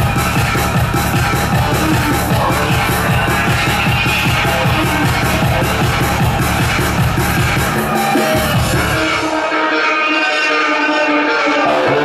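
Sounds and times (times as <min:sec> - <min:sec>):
kick drum: 0:00.0 - 0:07.9, 0:08.5 - 0:09.2
bass: 0:00.0 - 0:09.4.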